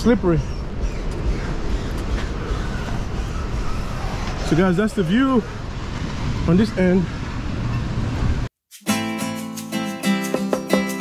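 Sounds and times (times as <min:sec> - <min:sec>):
acoustic guitar music: 0:08.8 - 0:11.0.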